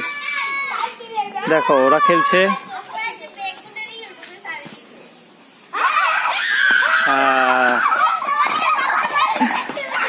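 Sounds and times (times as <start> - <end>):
shouting and chatter: 0.0 - 4.1, 5.6 - 10.0
children playing and calling out: 0.0 - 10.0.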